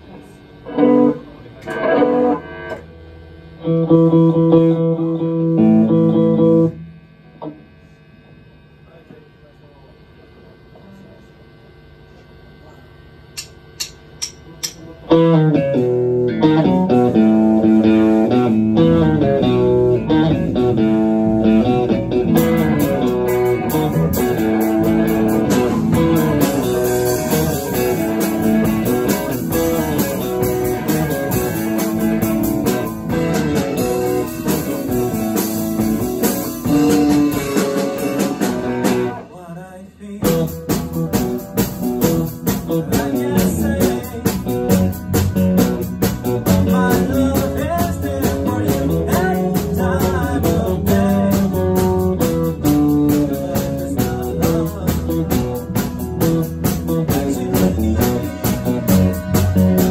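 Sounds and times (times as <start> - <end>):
live rock band playing: 0.7 - 6.8, 14.6 - 39.3, 40.2 - 59.9.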